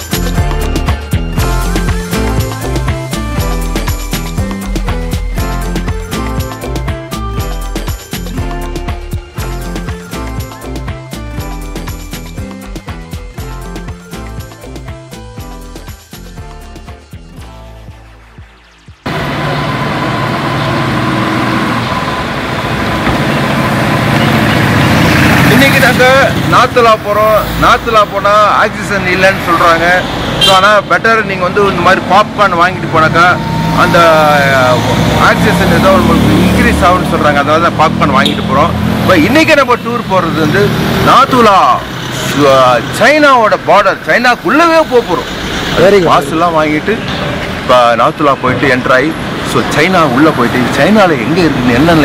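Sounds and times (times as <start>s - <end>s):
traffic engines rumbling: 19.0s - 52.0s
man speaking: 25.5s - 45.2s, 45.8s - 47.1s, 47.7s - 52.0s.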